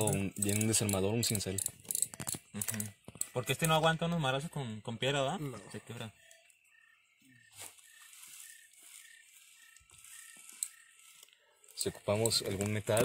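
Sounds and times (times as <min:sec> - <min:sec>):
faint high chirp: 0:02.0 - 0:12.6.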